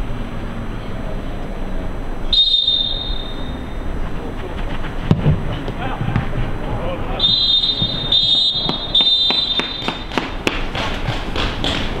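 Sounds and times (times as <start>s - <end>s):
referee's whistle long blasts: 2.3s - 3.8s, 7.2s - 10.1s
sharp knocks: 8.6s - 12.0s.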